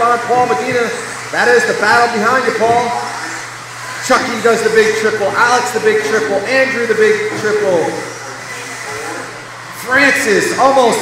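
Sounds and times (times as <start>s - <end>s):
electric model cars whirring: 0.0s - 11.0s.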